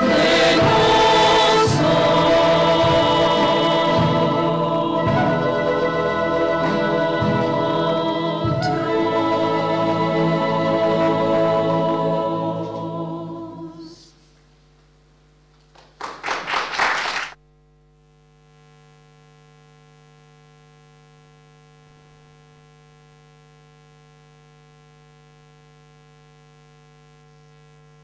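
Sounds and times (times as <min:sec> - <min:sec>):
choir singing final chord: 0:00.0 - 0:14.1
quiet hum of held pitches: 0:00.0 - 0:16.3, 0:17.4 - 0:28.0
audience applause: 0:15.7 - 0:17.4.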